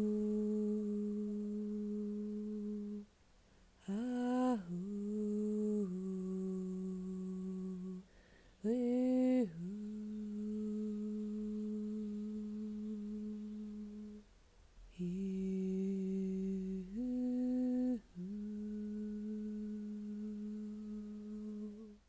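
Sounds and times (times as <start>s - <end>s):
person humming long held notes: 0.0s - 3.1s, 3.8s - 14.2s, 14.9s - 22.0s.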